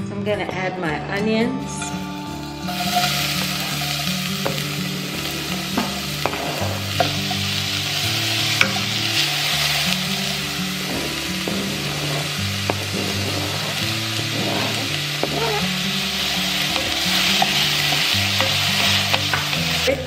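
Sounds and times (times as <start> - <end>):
onion sizzling in oil: 2.1 - 20.0.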